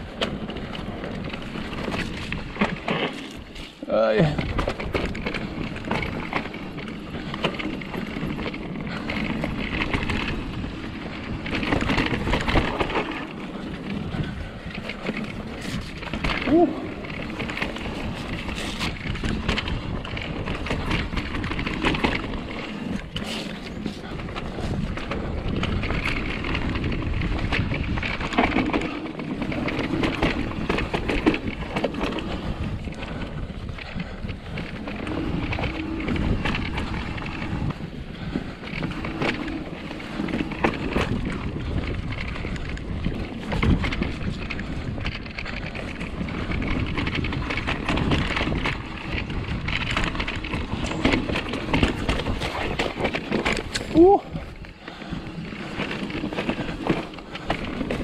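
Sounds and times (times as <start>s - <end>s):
bike tyres rolling on dirt: 0.0s - 58.0s.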